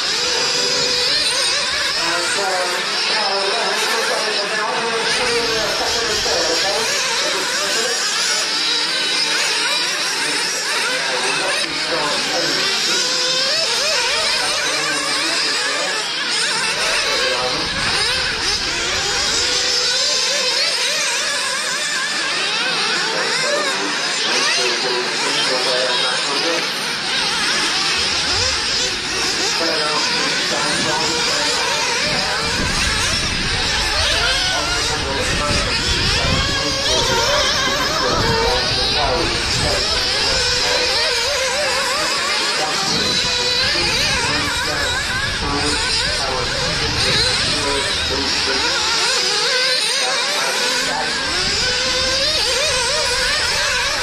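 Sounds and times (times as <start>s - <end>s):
small engines racing with whine: 0.0s - 54.0s.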